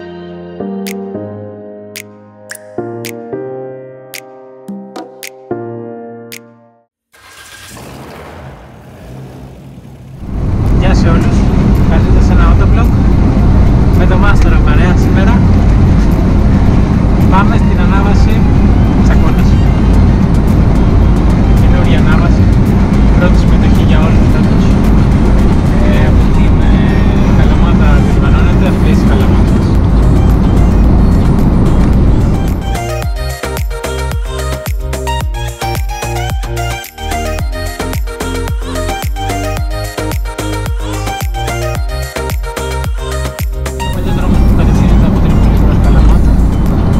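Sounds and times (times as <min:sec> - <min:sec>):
background music: 0:00.0 - 0:06.9, 0:10.7 - 0:46.9
car engine and road noise: 0:07.2 - 0:46.9
people talking: 0:10.7 - 0:13.0, 0:13.9 - 0:15.5, 0:17.2 - 0:19.7, 0:21.6 - 0:22.5, 0:23.1 - 0:24.8, 0:25.6 - 0:29.8, 0:43.9 - 0:46.6.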